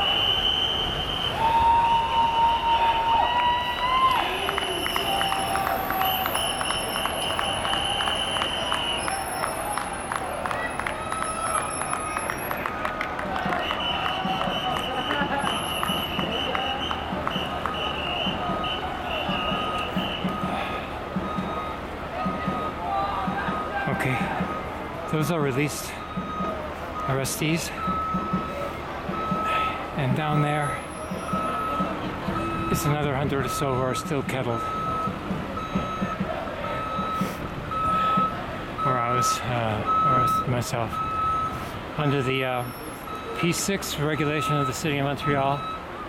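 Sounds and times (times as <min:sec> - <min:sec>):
traffic noise: 0:00.0 - 0:46.0.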